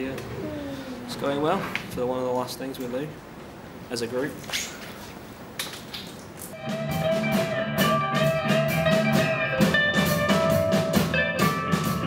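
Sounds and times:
bass line: 0:00.0 - 0:01.7
guitar: 0:06.5 - 0:12.0
drum kit beat: 0:06.6 - 0:12.0.

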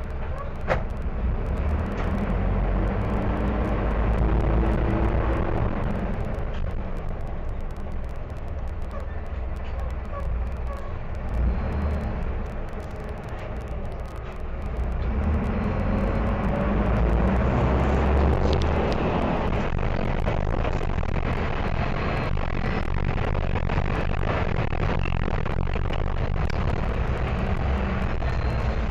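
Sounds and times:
bus diesel engine accelerating: 0:00.0 - 0:07.0, 0:11.2 - 0:22.5.

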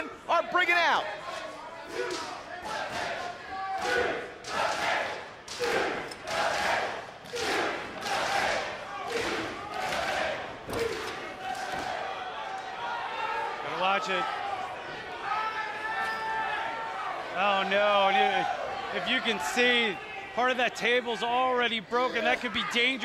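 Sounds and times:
crowd chanting: 0:01.4 - 0:13.6.

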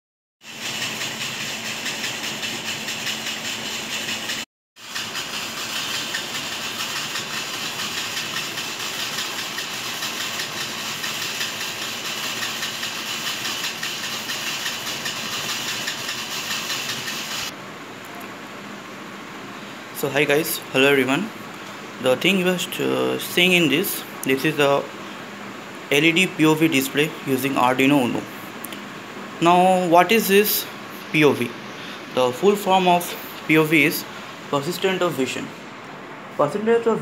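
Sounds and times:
small motor whirring: 0:00.4 - 0:17.5.

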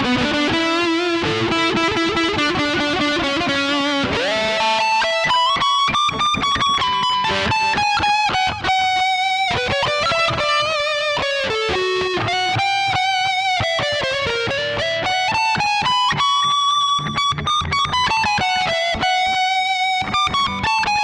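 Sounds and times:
electric guitar lead line: 0:00.0 - 0:21.0.

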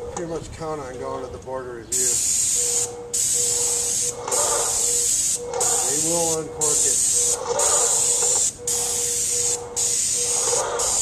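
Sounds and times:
paint spray gun hissing: 0:02.0 - 0:11.0.

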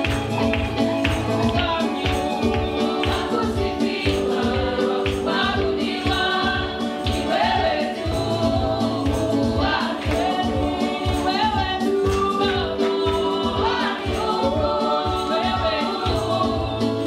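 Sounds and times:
band accompaniment: 0:00.0 - 0:17.0
steady drum beat: 0:00.0 - 0:17.0
women singing gospel: 0:00.0 - 0:17.0.

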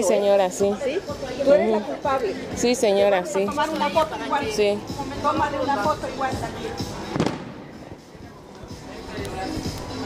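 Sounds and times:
background noise: 0:00.0 - 0:10.0
sharp bang: 0:07.1 - 0:07.9.

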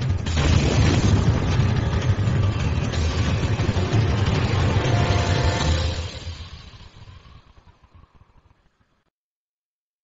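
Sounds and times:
music: 0:00.0 - 0:07.0.

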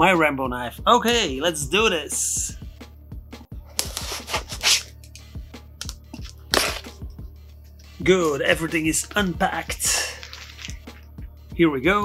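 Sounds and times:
background music with beat: 0:00.0 - 0:12.0
cardboard tearing: 0:03.7 - 0:04.9, 0:06.5 - 0:06.9
packing tape slit with knife: 0:03.7 - 0:05.2, 0:05.8 - 0:07.0.

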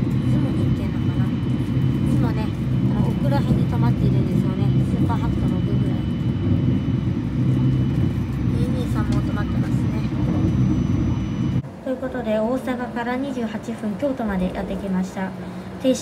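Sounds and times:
train running rumble: 0:00.0 - 0:16.0.

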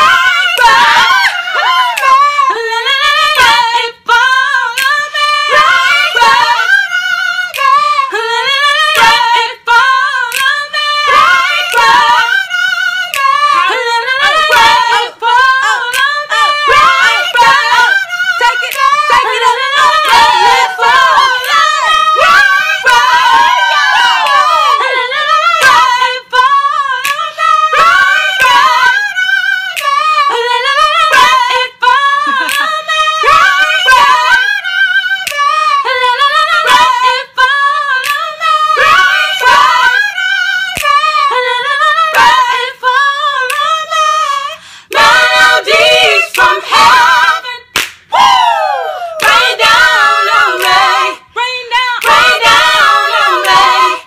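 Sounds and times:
high voice singing unaccompanied: 0:00.0 - 0:54.0
singer breathing: 0:44.5 - 0:45.0.

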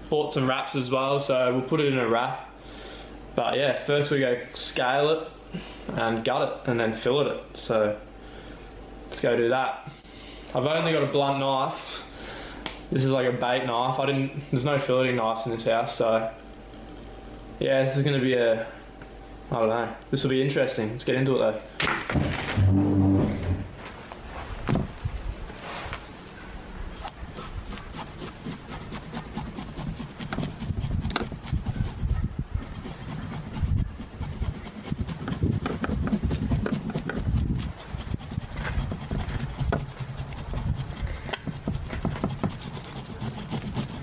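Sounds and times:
knife scraping fish scales: 0:25.8 - 0:44.0.

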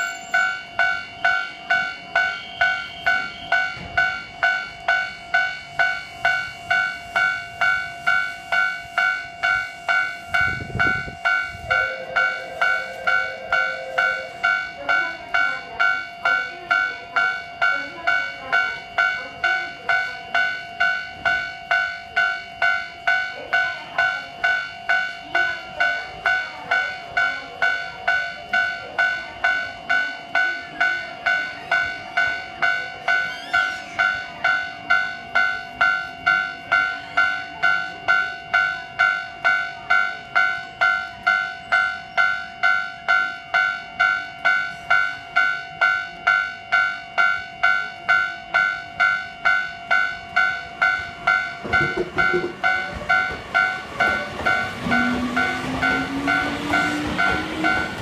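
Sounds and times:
level crossing warning bell: 0:00.0 - 0:58.0.

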